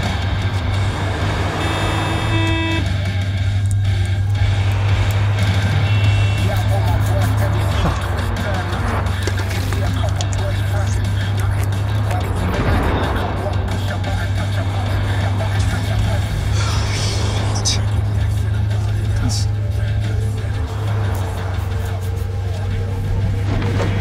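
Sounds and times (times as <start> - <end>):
background music: 0.0 - 24.0
road traffic: 0.0 - 24.0
car horn: 0.1 - 3.6, 4.3 - 9.4
steady low rumble: 3.1 - 24.0.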